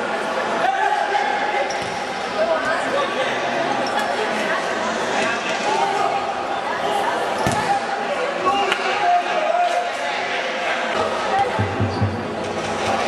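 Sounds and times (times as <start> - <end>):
players' voices in a hall: 0.0 - 13.0.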